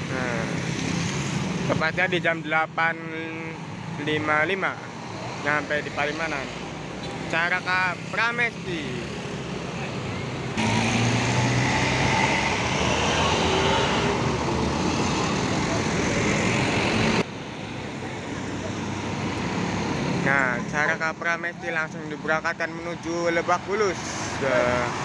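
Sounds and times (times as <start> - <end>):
road traffic noise: 0.0 - 25.0
diesel truck passing: 7.8 - 21.0.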